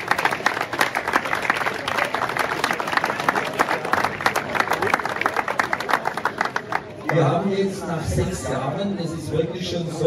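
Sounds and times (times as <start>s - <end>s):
crowd applauding: 0.0s - 7.5s.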